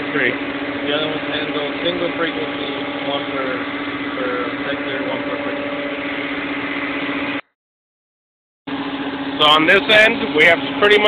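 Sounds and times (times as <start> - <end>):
cooling fans and air conditioner hum: 0.0 - 7.4, 8.7 - 11.0.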